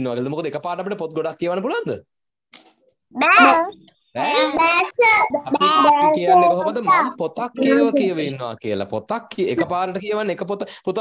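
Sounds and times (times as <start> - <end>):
child's drawn-out syllable: 3.2 - 8.2.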